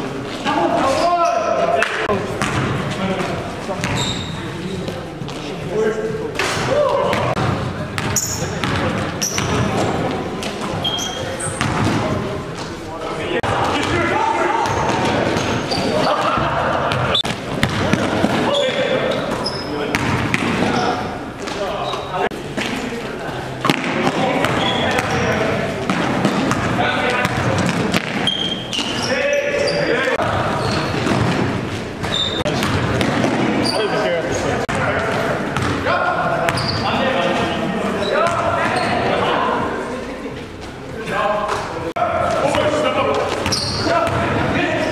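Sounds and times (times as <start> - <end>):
players' voices echoing: 0.0 - 44.9
sneaker squeaks: 3.8 - 5.0, 8.0 - 12.9, 13.8 - 22.3, 24.2 - 34.6, 36.4 - 39.3, 43.3 - 44.9.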